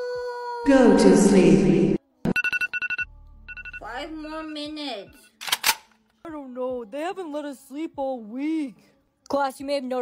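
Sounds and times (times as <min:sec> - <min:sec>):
rapid high electronic alarm beeps: 0:02.3 - 0:03.9.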